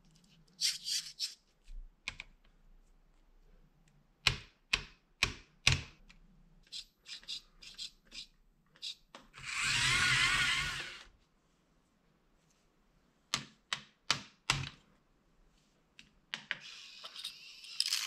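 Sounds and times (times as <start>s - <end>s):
small electric motor whirring: 9.4s - 11.1s.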